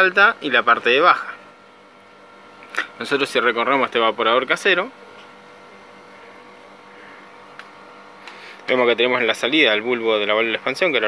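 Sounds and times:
faint mechanical hum with tones: 0.0s - 11.0s.

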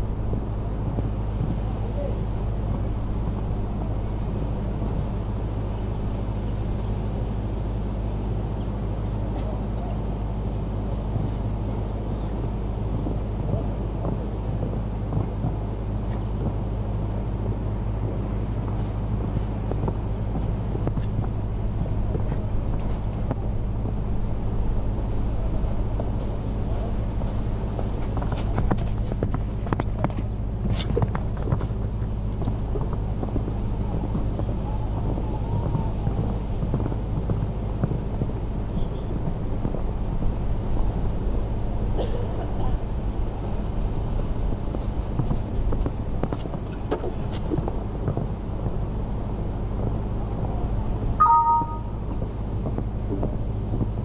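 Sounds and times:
murmur of distant voices: 0.0s - 54.0s
steady low hum: 0.0s - 54.0s
horse hoofbeats on sand: 27.4s - 41.1s, 43.7s - 49.0s.

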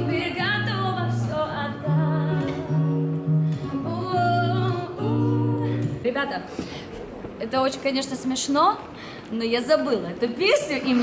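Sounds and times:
nylon-string guitar: 0.0s - 6.1s
woman singing slow song: 0.0s - 6.1s.

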